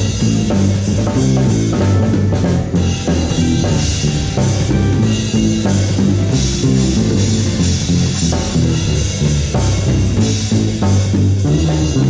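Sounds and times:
drum kit groove: 0:00.0 - 0:12.0
electric bass line: 0:00.0 - 0:12.0
keyboard chords: 0:00.0 - 0:12.0.

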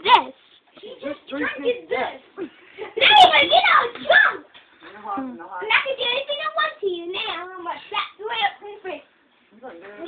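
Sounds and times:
children's voices: 0:00.0 - 0:04.6, 0:05.6 - 0:09.1.

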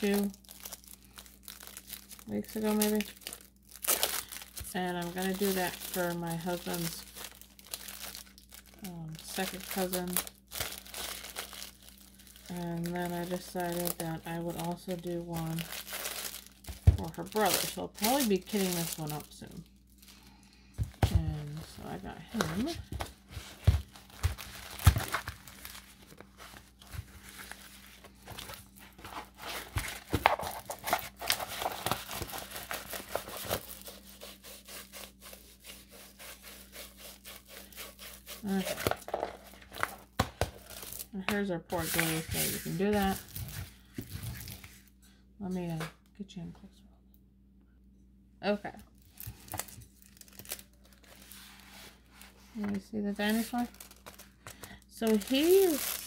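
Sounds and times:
plastic sleeve crinkling: 0:00.0 - 0:44.8, 0:49.0 - 0:56.0.

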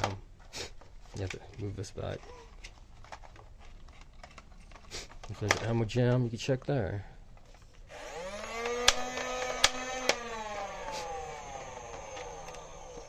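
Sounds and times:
toy blaster motor whine: 0:07.9 - 0:13.0
sharp clicks: 0:08.4 - 0:10.3.

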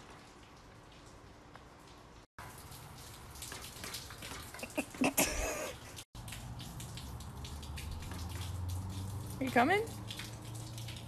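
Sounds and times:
rain falling on wet patio: 0:00.0 - 0:11.0.

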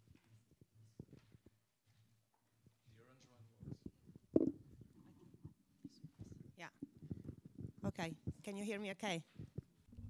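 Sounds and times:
microphone handling knocks: 0:04.3 - 0:04.6.

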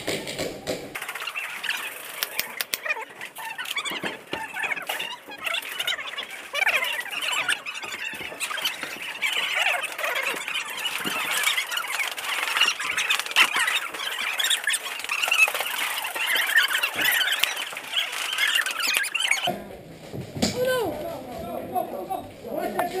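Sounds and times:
rubber soles squeaking on concrete: 0:00.0 - 0:23.0
sharp clicks: 0:02.1 - 0:03.0.

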